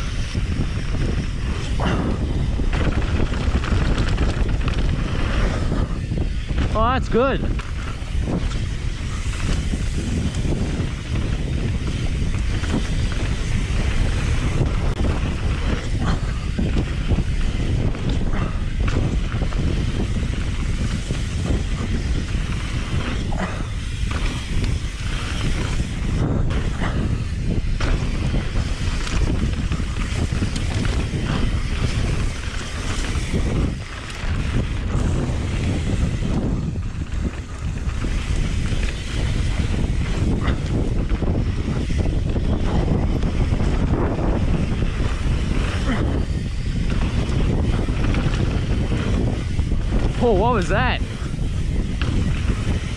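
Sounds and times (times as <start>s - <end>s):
bike rattling and knocking: 0.0s - 52.9s
wind buffeting microphone: 0.0s - 52.9s.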